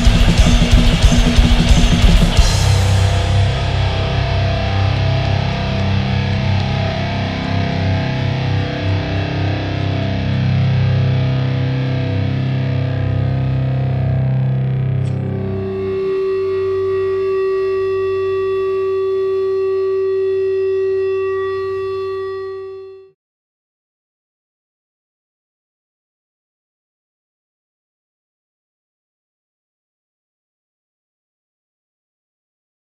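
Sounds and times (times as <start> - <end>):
live band with distorted guitar: 0.0 - 18.8
low drone: 0.0 - 23.1
held distorted guitar note: 0.0 - 23.2.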